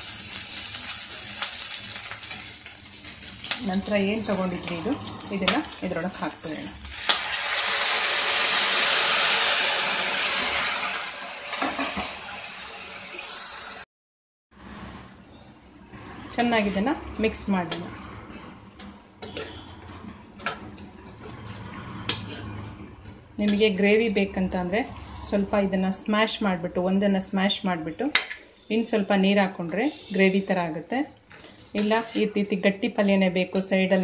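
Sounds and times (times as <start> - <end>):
onions sizzling in oil: 0.0 - 13.8, 14.6 - 18.0, 18.7 - 22.5, 28.1 - 34.0
spoon scraping a pan: 1.4 - 8.5, 16.0 - 25.6, 31.2 - 32.9
person's voice: 3.6 - 6.8, 31.8 - 34.0
spoon clinking and scraping pan: 17.6 - 24.1, 31.3 - 32.6.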